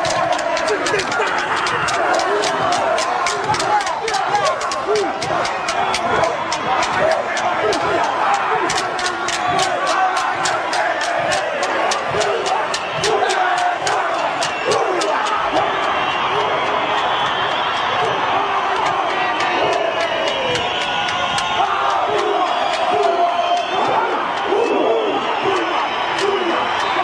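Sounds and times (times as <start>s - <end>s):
wooden sticks clacking: 0.0s - 16.5s, 17.8s - 27.0s
men shouting: 0.0s - 17.3s, 18.0s - 27.0s
stadium crowd: 0.0s - 27.0s.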